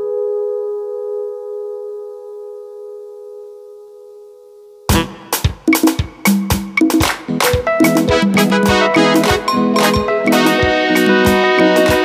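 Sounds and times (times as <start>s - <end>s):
keyboard sustained chord: 7.7s - 12.0s.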